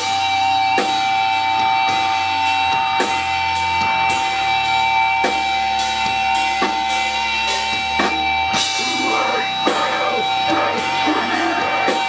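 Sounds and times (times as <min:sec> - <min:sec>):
distorted electric guitar chord: 0:08.6 - 0:12.0.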